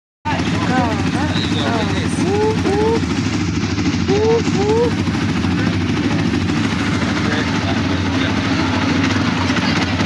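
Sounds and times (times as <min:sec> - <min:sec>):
buggy engine droning: 0:00.3 - 0:10.0
voices calling out: 0:00.3 - 0:10.0.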